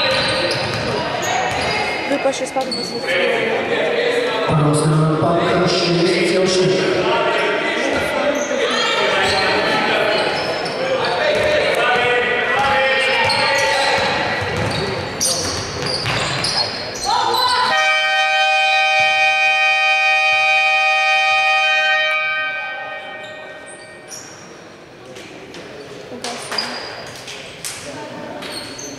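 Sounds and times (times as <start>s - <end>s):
basketball bouncing on hardwood: 14.0s - 14.8s, 15.4s - 16.5s
buzzing game horn: 17.7s - 23.2s.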